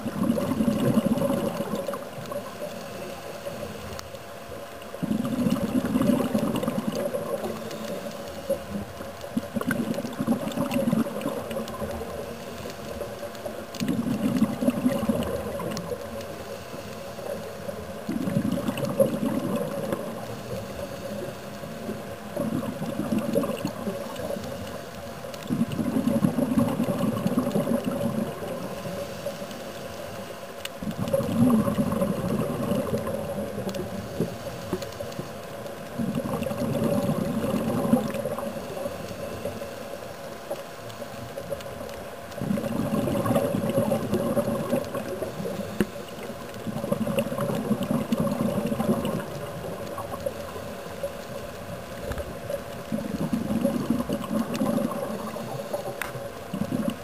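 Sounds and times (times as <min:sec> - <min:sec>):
exhaled bubbles underwater: 0:00.0 - 0:57.0
faint steady hum: 0:00.0 - 0:57.0.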